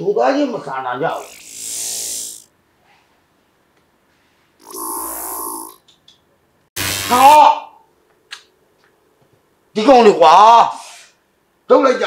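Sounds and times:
man breathy hiss: 1.2 - 2.5.

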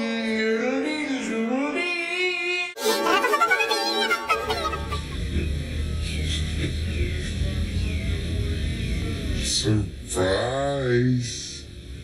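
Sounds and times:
low bass drone: 4.4 - 10.2.

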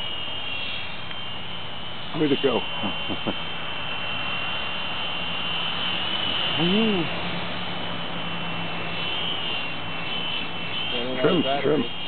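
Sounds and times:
toy helicopter rotor whine: 0.0 - 12.0
person humming: 6.6 - 7.1.

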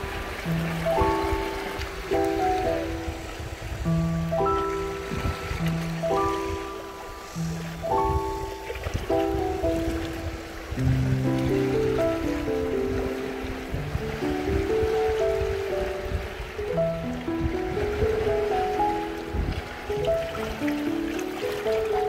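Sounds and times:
shallow seawater washing: 0.0 - 22.0
slow melody of held notes: 0.0 - 22.0.

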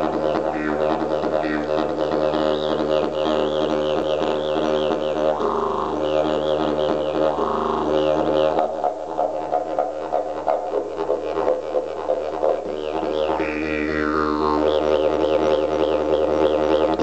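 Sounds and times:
didgeridoo drone: 0.0 - 17.0.

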